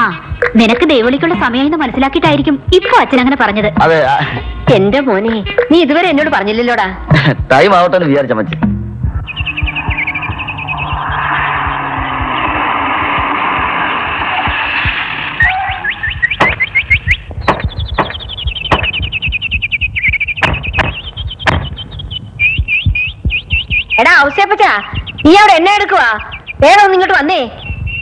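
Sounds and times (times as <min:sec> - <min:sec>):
sharp percussive hits: 0:08.4 - 0:21.9
falling high chirps: 0:09.1 - 0:28.0
swelling hiss: 0:11.0 - 0:15.8.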